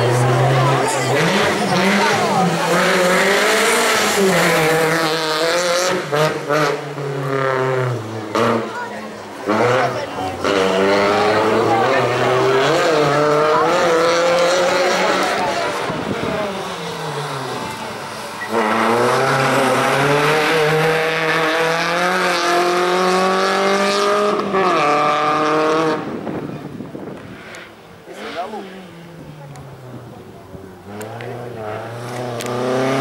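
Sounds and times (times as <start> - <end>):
car engine revving hard: 0.0 - 26.5, 30.8 - 33.0.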